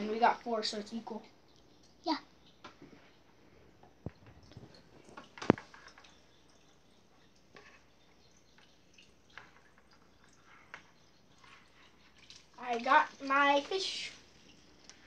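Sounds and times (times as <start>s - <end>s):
water splashing in plastic bucket: 3.9s - 6.7s, 7.4s - 15.0s.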